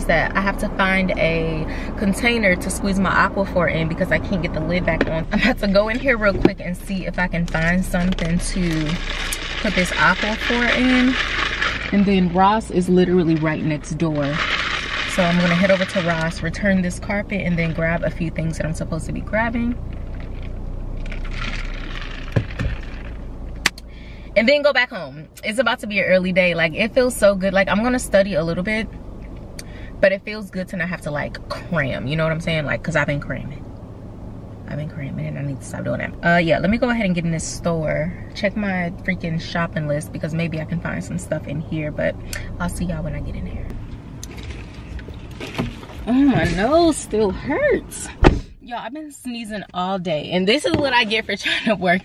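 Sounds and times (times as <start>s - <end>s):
car cabin hum: 0.0s - 52.0s
sucking drink through a straw: 8.5s - 12.2s, 13.5s - 16.2s.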